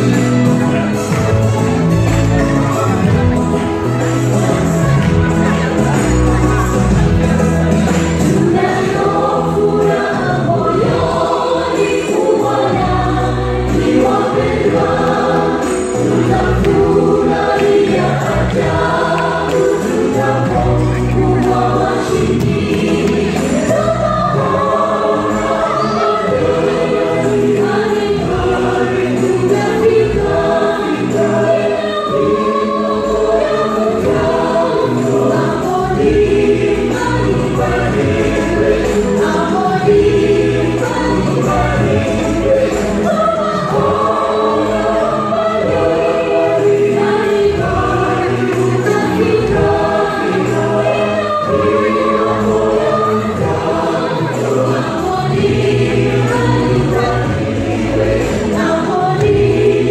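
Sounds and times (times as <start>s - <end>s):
gospel choir singing: 0.0s - 59.9s.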